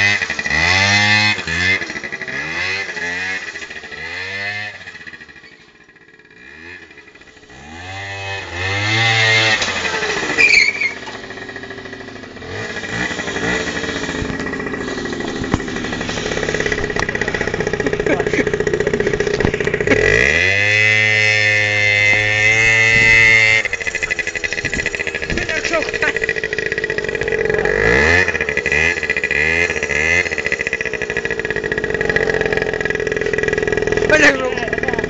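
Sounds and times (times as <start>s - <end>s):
scooter engine revving: 0.0s - 35.0s
steady high whine: 11.0s - 35.0s.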